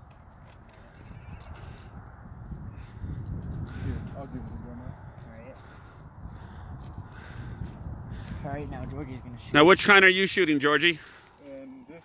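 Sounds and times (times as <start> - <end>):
footsteps on dry dirt: 0.0 - 9.4
wind rumble on microphone: 0.0 - 9.9.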